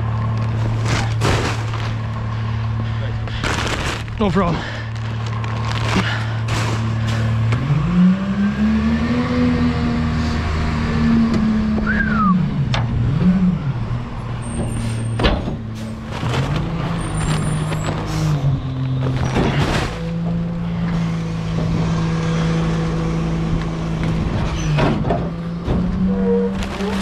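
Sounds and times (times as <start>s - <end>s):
garbage truck engine revving: 0.0s - 27.0s
truck body knocks and rattles: 0.5s - 2.0s, 14.5s - 18.0s, 24.0s - 27.0s.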